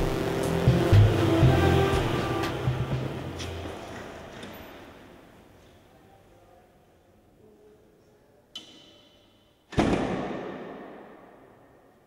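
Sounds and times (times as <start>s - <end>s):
heavy door thud echoing: 9.7s - 11.6s.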